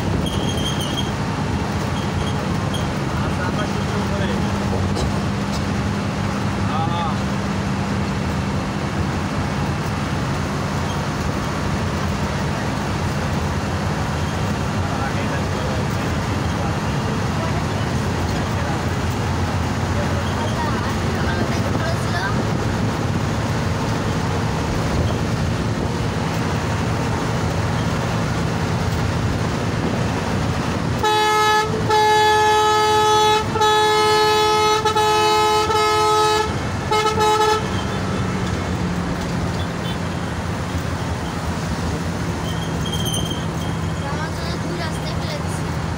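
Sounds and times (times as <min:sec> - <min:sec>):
coach engine and road noise: 0:00.0 - 0:45.9
multi-note horn blasts: 0:31.0 - 0:38.2.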